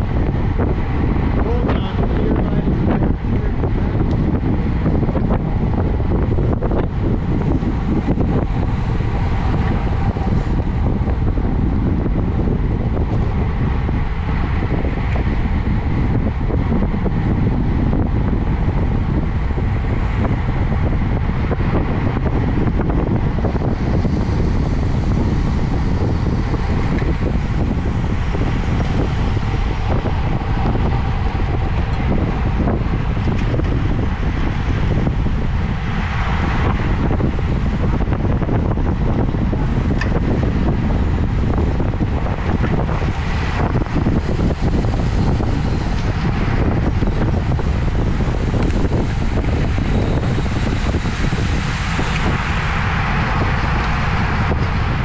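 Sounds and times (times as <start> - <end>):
tyre and road rumble: 0.0 - 55.0
wind rush on microphone: 0.0 - 55.0.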